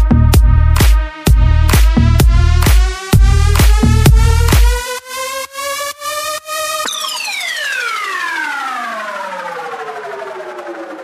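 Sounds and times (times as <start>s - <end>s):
siren-like synth tone gliding down: 6.6s - 11.0s.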